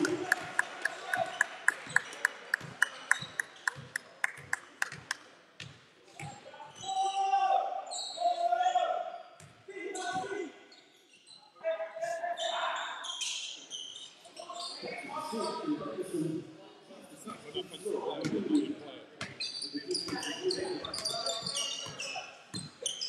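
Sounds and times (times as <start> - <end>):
players calling out echoing: 0.0 - 4.2.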